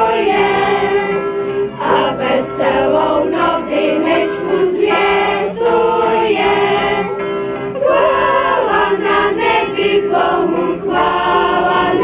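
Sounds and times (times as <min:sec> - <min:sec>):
women's choir singing unaccompanied: 0:00.0 - 0:12.0.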